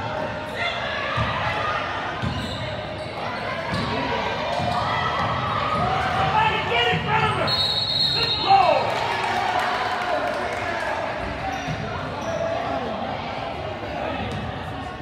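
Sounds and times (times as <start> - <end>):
voices of players and spectators: 0.0 - 15.0.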